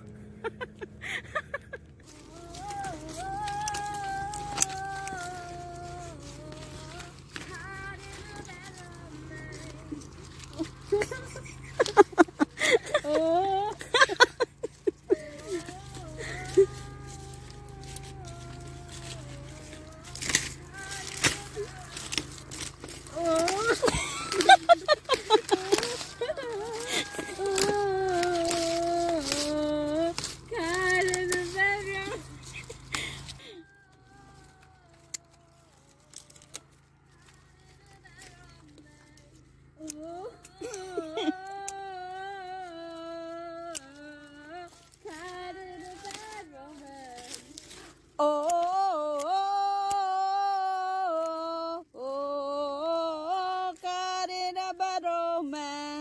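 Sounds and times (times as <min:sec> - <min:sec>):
steady low drone: 0:00.0 - 0:48.0
person humming slow tune: 0:00.0 - 0:56.0.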